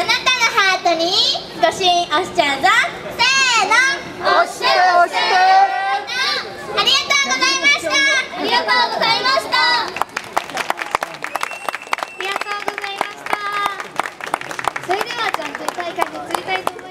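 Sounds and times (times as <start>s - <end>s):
audience clapping: 9.8s - 16.9s.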